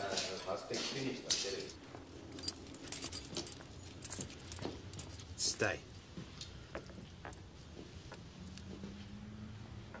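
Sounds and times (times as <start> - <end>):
light metallic jangling: 0.0 - 8.7
sharp metallic clinks: 1.3 - 8.7.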